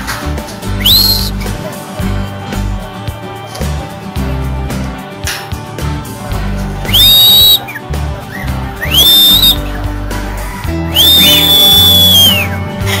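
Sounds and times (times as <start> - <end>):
rising whistles: 0.8 - 1.4, 6.9 - 7.7, 8.3 - 9.6, 10.9 - 12.6.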